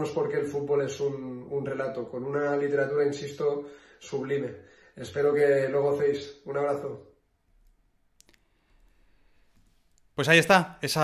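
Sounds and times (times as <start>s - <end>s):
faint clicks: 7.6s - 10.1s
person speaking: 10.0s - 11.0s.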